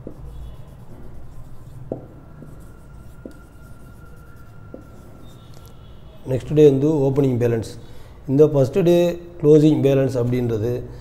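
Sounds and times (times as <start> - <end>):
marker taps: 0.0 - 0.3, 1.9 - 3.5, 4.7 - 5.0
marker writing on whiteboard: 0.0 - 5.9.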